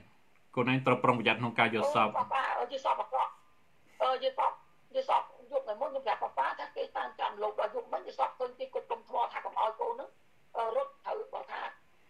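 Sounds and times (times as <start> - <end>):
woman talking through phone speaker: 1.8 - 3.4, 4.0 - 11.8.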